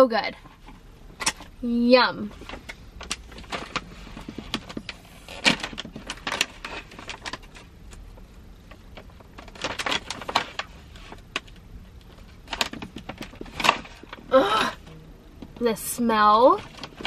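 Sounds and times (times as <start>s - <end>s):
plastic snack bag crinkling: 3.0s - 14.3s.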